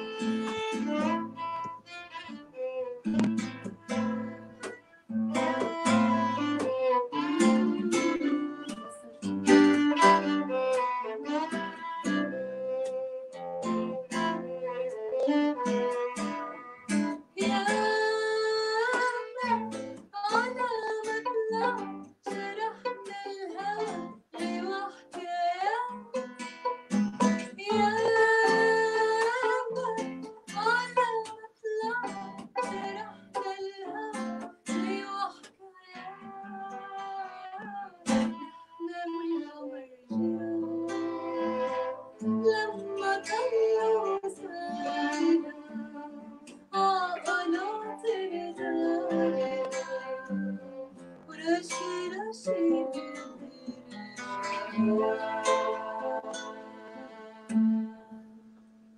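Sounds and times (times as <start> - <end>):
classical guitar picking: 0.0 - 58.9
violin: 0.0 - 58.9
woman singing long notes: 17.4 - 26.0, 34.8 - 53.7, 54.5 - 58.2.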